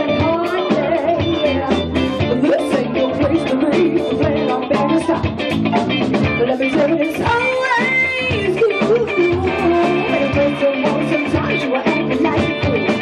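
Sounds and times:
woman singing: 0.0 - 5.6, 6.3 - 13.0
drum kit beat: 0.0 - 13.0
electric guitar: 0.0 - 13.0.

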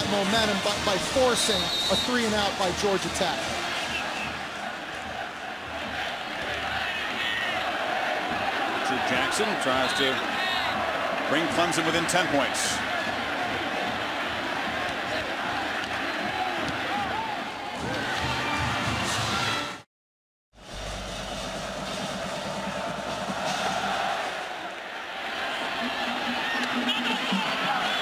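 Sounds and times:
music playing: 0.0 - 19.8, 20.6 - 28.0
stadium crowd noise: 0.0 - 19.9, 20.6 - 28.0.

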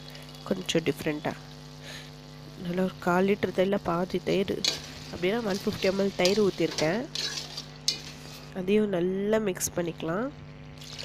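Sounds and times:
masala sizzling: 0.0 - 8.9, 10.6 - 11.0.

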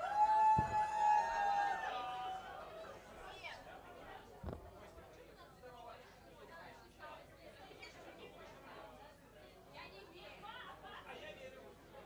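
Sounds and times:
faint chatter of people: 0.0 - 12.0.

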